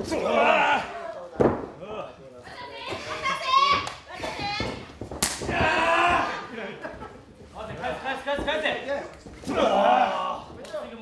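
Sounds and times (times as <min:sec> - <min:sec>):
voices shouting: 0:05.5 - 0:06.6.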